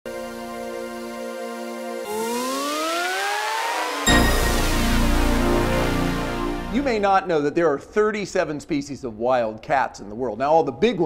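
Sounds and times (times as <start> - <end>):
rising synthesized sweep: 0.1 - 7.2.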